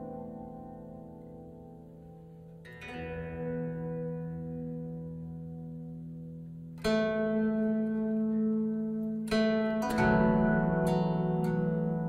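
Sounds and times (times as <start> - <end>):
zither note plucked: 0.0 - 12.0.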